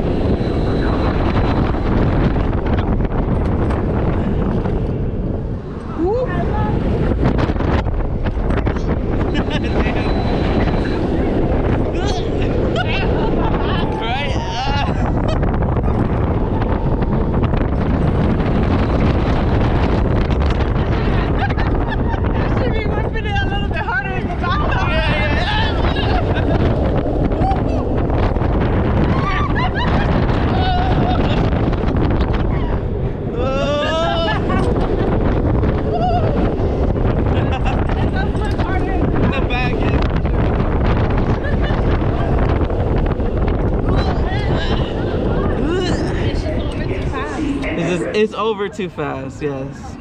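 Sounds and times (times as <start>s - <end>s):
roller coaster train rushing: 0.0s - 50.0s
wind buffeting microphone: 0.0s - 50.0s
riders screaming and yelling: 23.5s - 47.4s.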